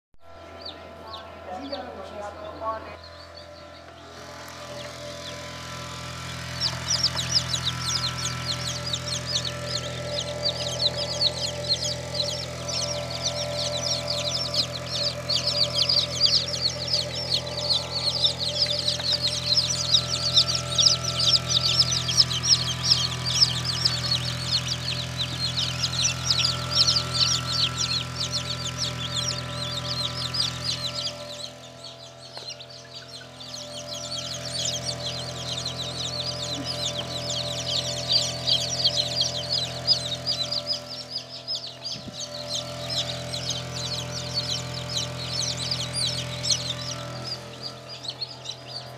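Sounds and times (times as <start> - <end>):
chicks peeping: 0.2 - 48.9
low hum: 0.2 - 48.9.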